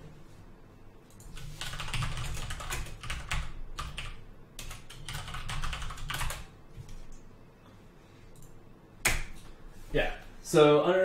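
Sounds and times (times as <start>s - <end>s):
typing on computer keyboard: 1.1s - 7.2s.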